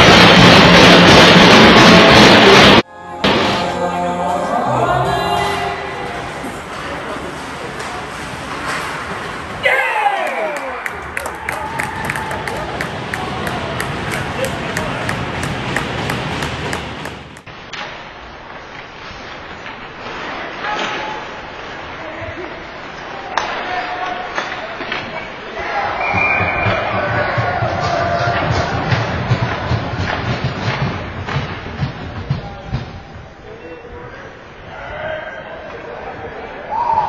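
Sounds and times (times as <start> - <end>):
players and spectators shouting: 9.6 - 16.9
hockey sticks and puck hitting boards: 11.7 - 18.0.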